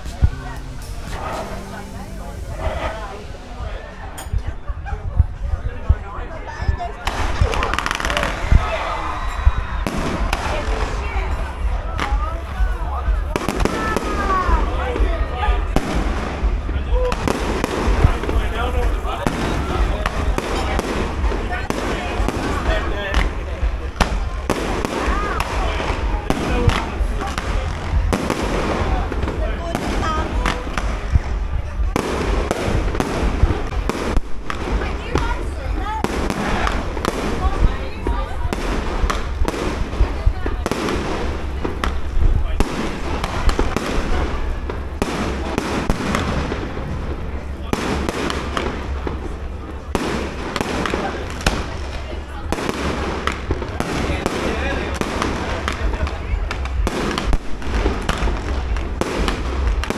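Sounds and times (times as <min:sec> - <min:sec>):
fireworks bangs and crackling: 0:00.0 - 0:59.9
people talking: 0:00.0 - 0:59.9.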